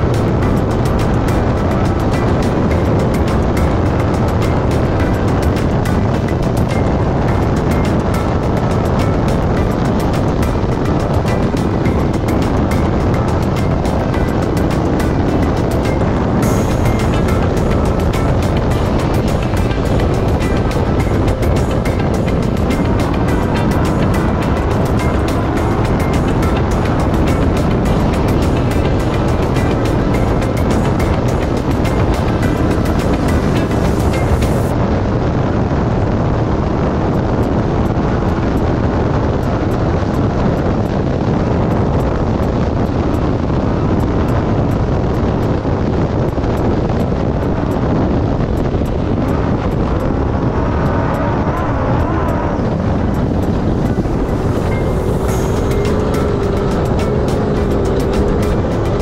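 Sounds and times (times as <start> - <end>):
race car engine running: 0.0 - 34.8, 37.1 - 59.0
background music: 0.0 - 35.0, 49.1 - 59.0
tyres on dirt track: 48.9 - 59.0.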